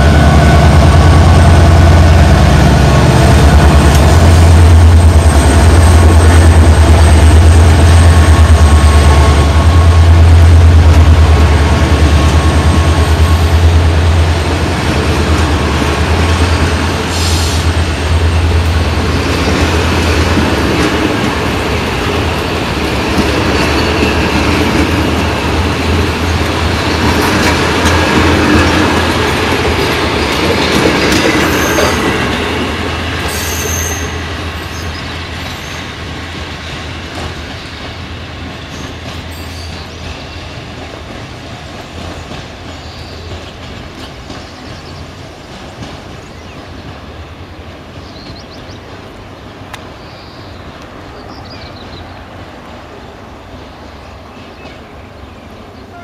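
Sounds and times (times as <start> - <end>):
train wheels clattering over rails: 0.0 - 50.0
diesel locomotive engine drone: 0.0 - 56.0.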